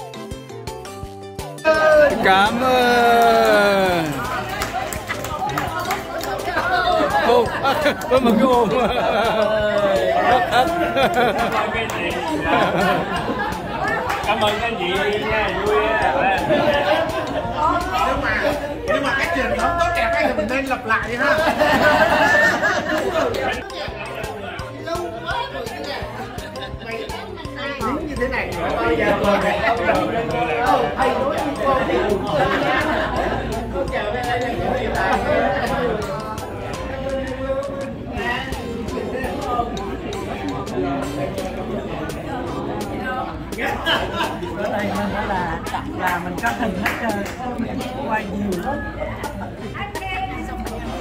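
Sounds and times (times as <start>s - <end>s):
background music with steady beat: 0.0s - 51.0s
people chatting: 1.7s - 51.0s.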